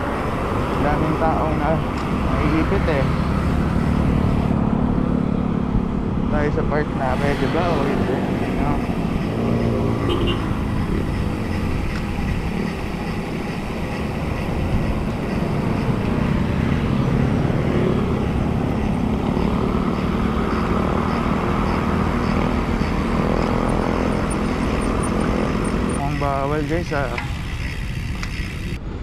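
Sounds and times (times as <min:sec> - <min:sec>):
wind rushing over microphone: 0:00.0 - 0:26.1
vehicle engine hum: 0:00.0 - 0:29.0.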